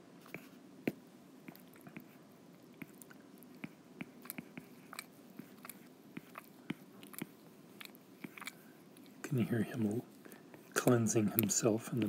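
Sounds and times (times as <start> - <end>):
cat licking its fur: 2.7 - 9.2.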